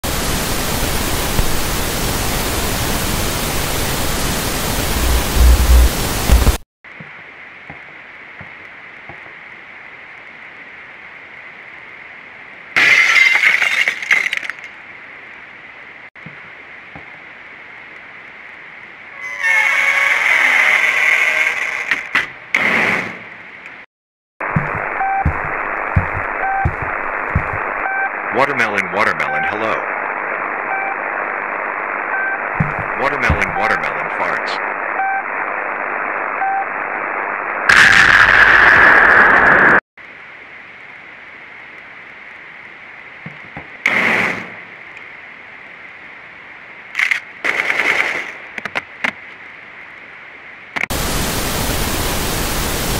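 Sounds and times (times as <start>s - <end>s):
radio static: 0.0s - 6.6s, 24.4s - 39.8s
television static hiss: 0.1s - 12.8s, 14.8s - 21.9s, 24.4s - 43.9s, 44.6s - 52.9s
heavy low thumps: 4.9s - 6.6s, 24.5s - 27.7s
short beeps: 25.0s - 25.4s.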